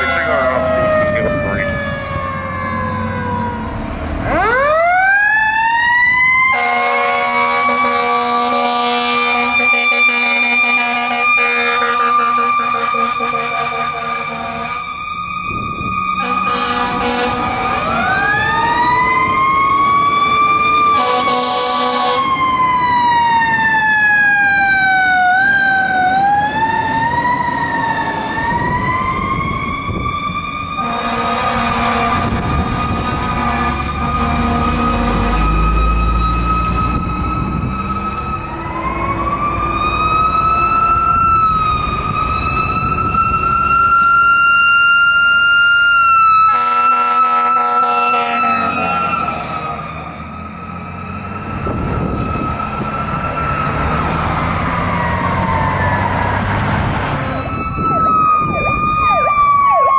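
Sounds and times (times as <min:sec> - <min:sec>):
fire truck siren wailing: 0:00.0 - 0:59.9
air horn blasts: 0:06.5 - 0:14.9, 0:16.2 - 0:18.0, 0:20.9 - 0:22.3, 0:30.8 - 0:35.6, 0:46.4 - 0:49.4.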